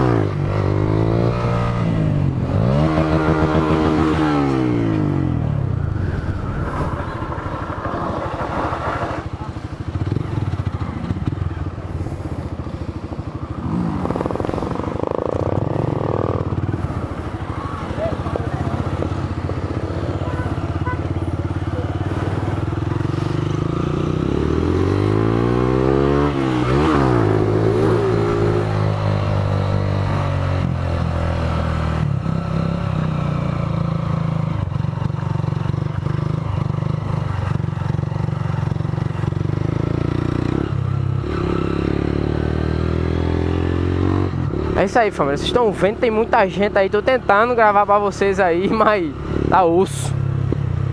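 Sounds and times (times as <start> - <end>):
motorcycle engine running: 0.0 - 50.9
passing motorcycle engine: 0.0 - 50.9.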